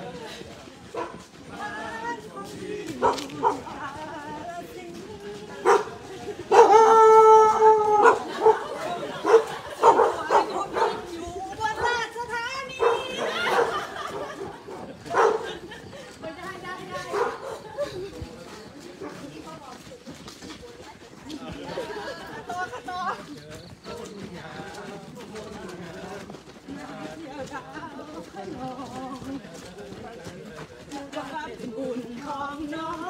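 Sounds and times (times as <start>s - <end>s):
runners chatting: 0.0s - 33.0s.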